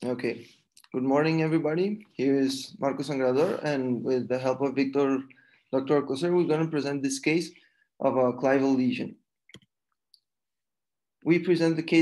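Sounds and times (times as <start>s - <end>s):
computer mouse click: 9.5s - 10.3s.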